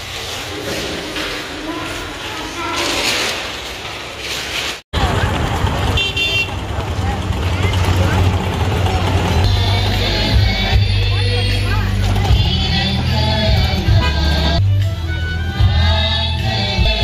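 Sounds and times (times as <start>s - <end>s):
passing motorbikes: 5.0s - 14.6s
crowd chatter: 5.0s - 15.5s.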